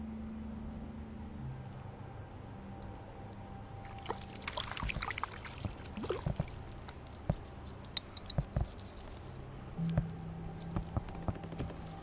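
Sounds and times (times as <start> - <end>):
fish splashing in water: 3.9 - 6.6.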